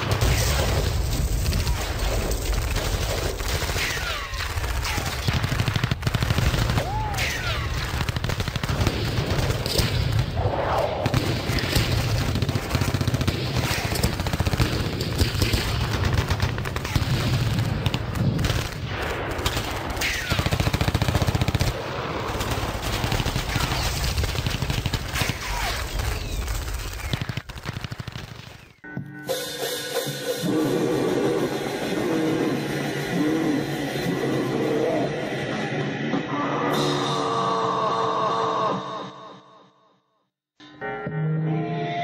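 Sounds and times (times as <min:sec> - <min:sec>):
rapid-fire drumming: 0:00.0 - 0:10.4, 0:11.0 - 0:28.6.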